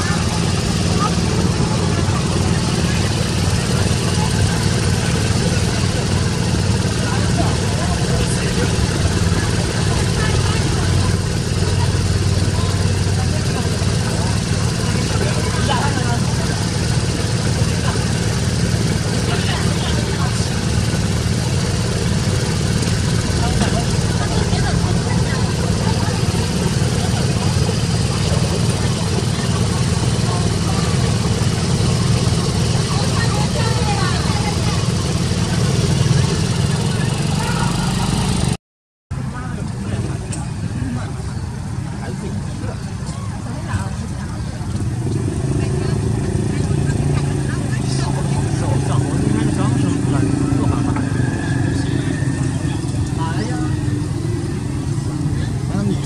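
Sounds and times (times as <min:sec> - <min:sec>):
engine-like low hum: 0:00.0 - 0:56.0
background voices: 0:39.4 - 0:56.0.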